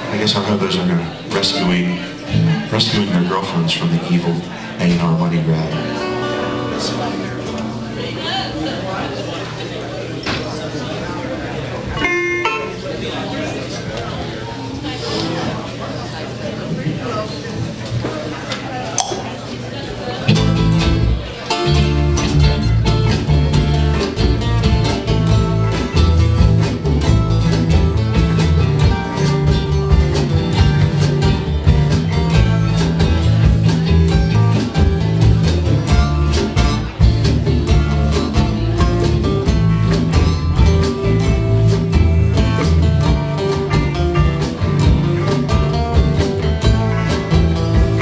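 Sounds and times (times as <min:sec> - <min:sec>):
folk bluegrass band playing: 0:00.0 - 0:16.1, 0:19.2 - 0:48.0
strong bass line: 0:20.4 - 0:48.0.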